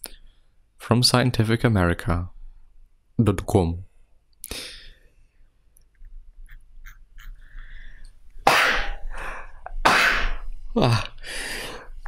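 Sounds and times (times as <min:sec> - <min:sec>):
person sneezing loudly: 0:08.4 - 0:09.1, 0:09.8 - 0:11.0.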